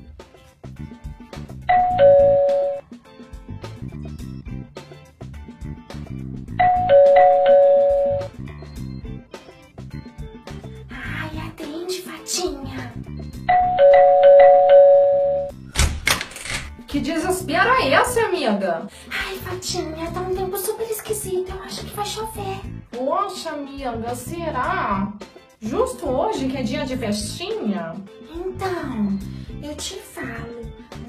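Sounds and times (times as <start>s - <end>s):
background music with beat: 0.0s - 13.6s, 19.4s - 31.0s
two-tone doorbell chime: 1.7s - 2.8s, 6.6s - 8.3s, 13.5s - 15.5s.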